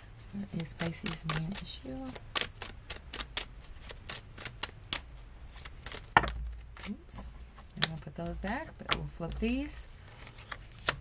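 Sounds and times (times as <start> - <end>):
cards being shuffled: 0.4 - 11.0.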